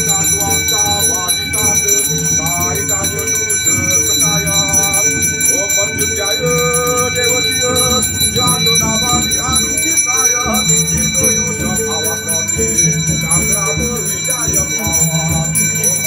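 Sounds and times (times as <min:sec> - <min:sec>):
bells ringing: 0:00.0 - 0:16.0
many voices chanting or singing: 0:00.0 - 0:16.0.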